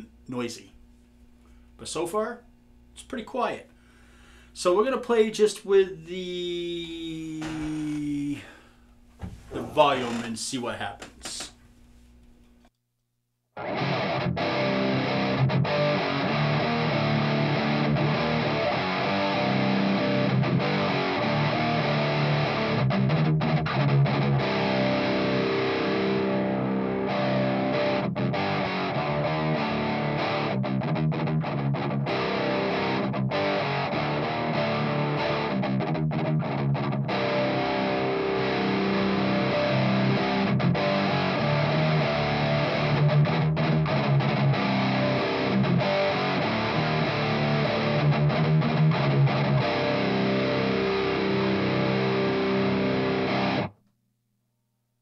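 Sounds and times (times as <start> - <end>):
distorted electric guitar riffing: 6.8 - 8.5, 13.6 - 53.7.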